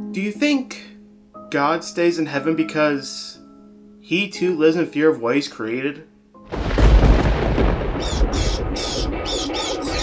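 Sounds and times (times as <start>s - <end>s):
thunderclap rumble: 6.5s - 10.0s
bats screeching: 8.0s - 10.0s.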